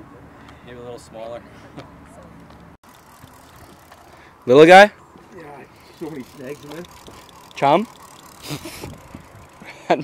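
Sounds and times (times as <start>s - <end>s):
fishing reel cranking: 2.8s - 4.3s, 5.6s - 10.0s
reel whirring burst: 5.8s - 9.8s.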